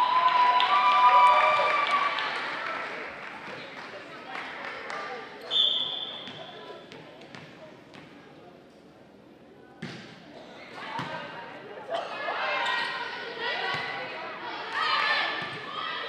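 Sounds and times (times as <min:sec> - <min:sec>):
voices of players and spectators: 0:00.0 - 0:16.0
referee's whistle: 0:05.5 - 0:06.3.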